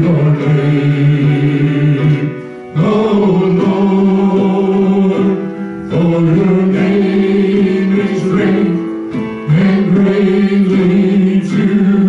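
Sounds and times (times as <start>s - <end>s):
singers singing a praise chorus: 0.0s - 12.0s.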